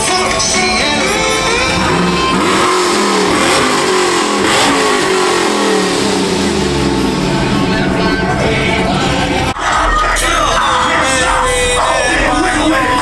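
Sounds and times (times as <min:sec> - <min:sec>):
pickup engine revving: 0:00.6 - 0:09.6.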